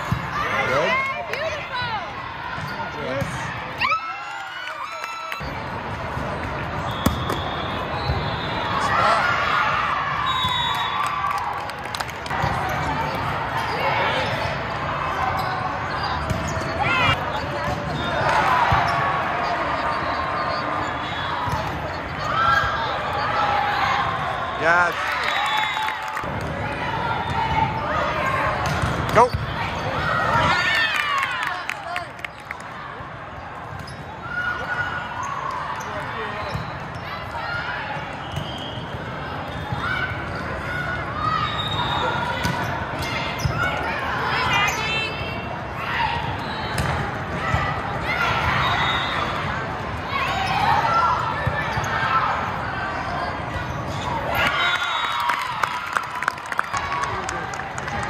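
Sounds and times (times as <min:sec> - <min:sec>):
spectators chatting: 0:11.8 - 0:25.2.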